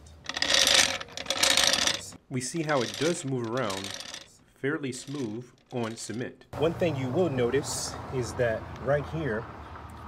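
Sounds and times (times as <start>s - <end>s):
floor jack wheels rattling on cement: 0.2s - 4.3s, 4.9s - 6.3s.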